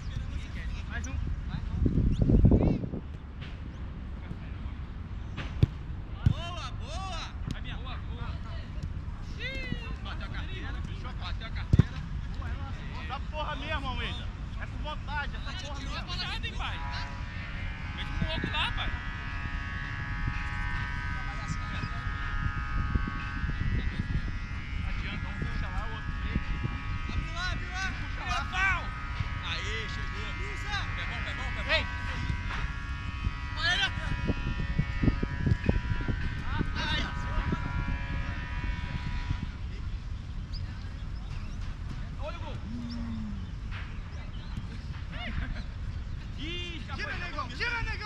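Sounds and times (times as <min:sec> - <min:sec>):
motor drone: 0:00.0 - 0:48.0
wind rumbling on microphone: 0:00.0 - 0:48.0.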